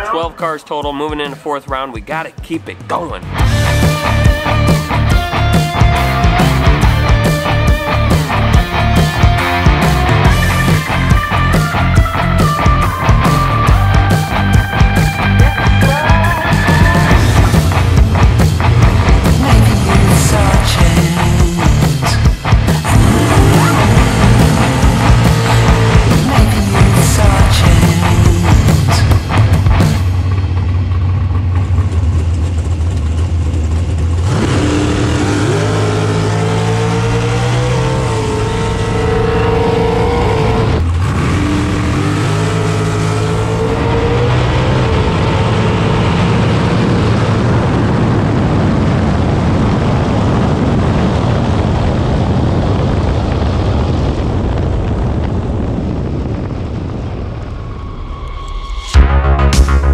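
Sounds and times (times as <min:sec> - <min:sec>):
dragster engine idling and revving: 0:03.3 - 0:57.9.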